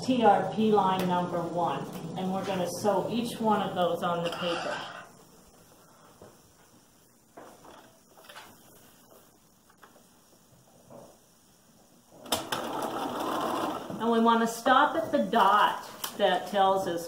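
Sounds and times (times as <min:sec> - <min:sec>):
sewing machine running: 0:12.2 - 0:14.0.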